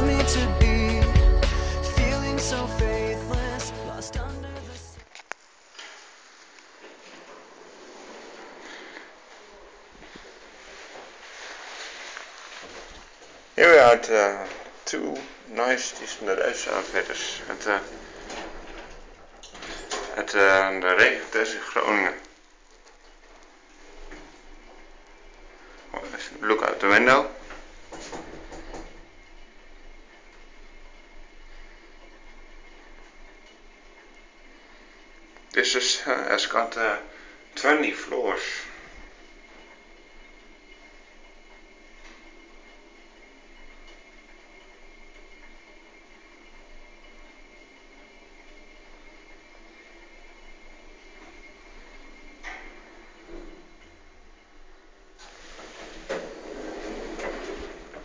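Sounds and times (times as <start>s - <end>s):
elevator doors sliding open: 14.9s - 22.2s, 55.2s - 58.0s
even hiss: 55.2s - 58.0s.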